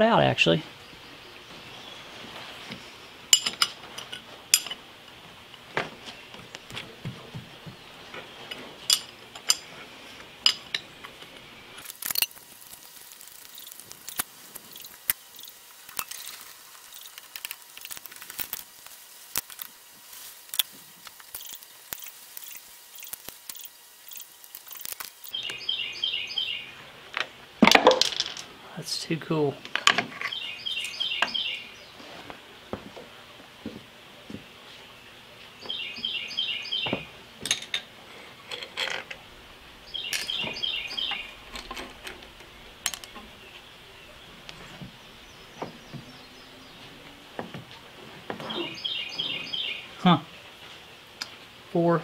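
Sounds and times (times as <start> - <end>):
metal tools clinking on iron table: 3.3 - 4.8, 8.5 - 9.7, 37.4 - 39.2.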